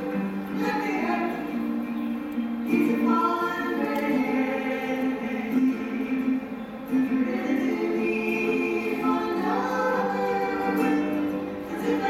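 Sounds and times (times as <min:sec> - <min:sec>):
women singing a church song: 0:00.6 - 0:01.6, 0:02.7 - 0:06.2, 0:07.2 - 0:12.0.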